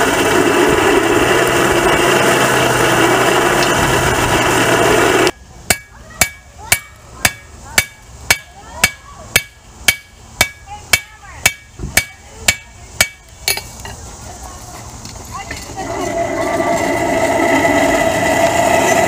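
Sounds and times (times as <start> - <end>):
hand-cranked forge blower: 0.0 - 6.4, 15.4 - 19.0
hammer striking iron on anvil: 5.7 - 13.7.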